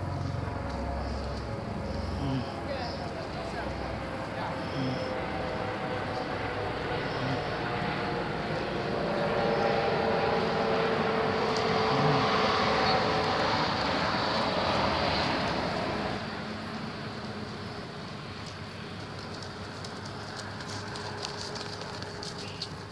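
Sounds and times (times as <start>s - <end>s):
distant engine drone: 0.0s - 22.9s.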